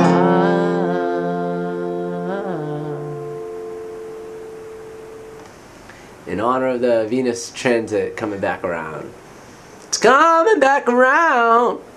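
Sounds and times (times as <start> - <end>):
humming and chanting: 0.0 - 5.3
steady pure musical tone: 0.0 - 5.5
faint hiss: 0.0 - 11.9.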